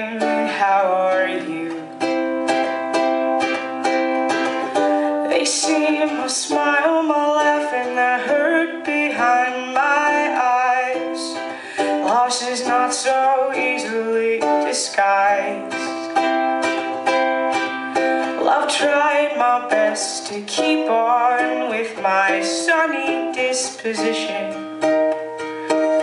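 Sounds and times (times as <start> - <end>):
woman singing: 0.0 - 2.8, 4.9 - 16.7, 17.6 - 25.3
strummed ukulele: 0.0 - 26.0.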